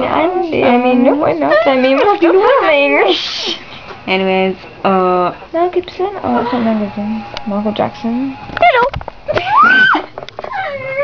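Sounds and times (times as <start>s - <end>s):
high whining voice: 0.0s - 11.0s.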